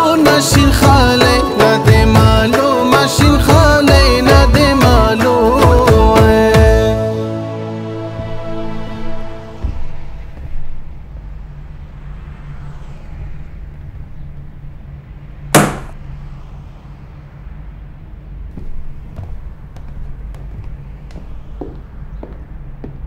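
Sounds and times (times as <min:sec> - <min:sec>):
steady low rumble: 0:08.3 - 0:23.0
loud sharp bang: 0:15.5 - 0:16.0.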